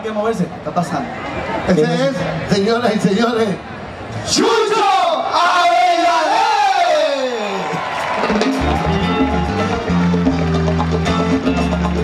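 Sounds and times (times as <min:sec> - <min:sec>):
salsa orchestra playing: 0:08.0 - 0:12.0.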